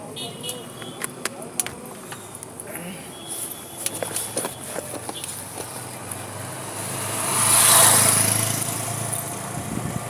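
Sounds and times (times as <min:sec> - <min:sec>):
motorcycle passing by: 0:06.2 - 0:10.0.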